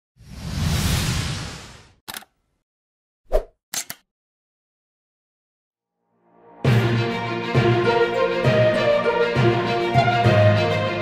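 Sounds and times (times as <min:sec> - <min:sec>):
quick clicks: 0:02.1 - 0:02.3, 0:03.7 - 0:04.0.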